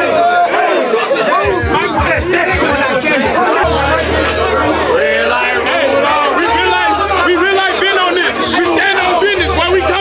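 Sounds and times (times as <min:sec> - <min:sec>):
young men shouting and chanting: 0:00.0 - 0:10.0
music with deep bass thuds: 0:01.3 - 0:10.0
held bass note: 0:01.4 - 0:10.0.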